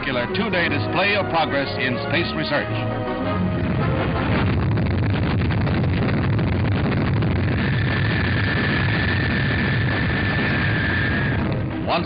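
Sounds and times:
rocket engine exhaust roar: 0.0s - 12.0s
steady high whine: 2.9s - 12.0s.

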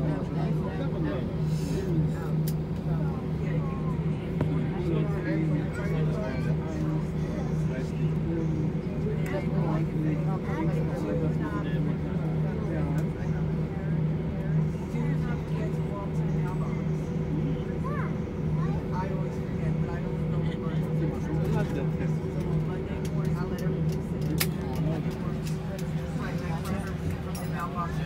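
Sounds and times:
engines humming at idle: 0.0s - 28.0s
passengers talking: 0.0s - 28.0s.

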